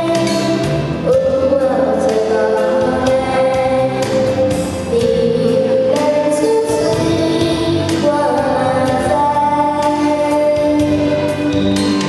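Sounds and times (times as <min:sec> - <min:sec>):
girl singing into microphone: 0:00.0 - 0:11.7
karaoke backing track: 0:00.0 - 0:12.0.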